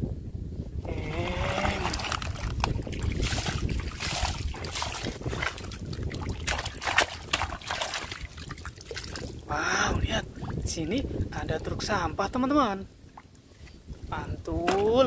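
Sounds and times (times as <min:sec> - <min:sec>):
water splashing and sloshing: 0:00.9 - 0:09.5, 0:10.2 - 0:11.6, 0:13.0 - 0:13.8, 0:14.5 - 0:15.0
gravel and plastic clattering: 0:01.6 - 0:05.8.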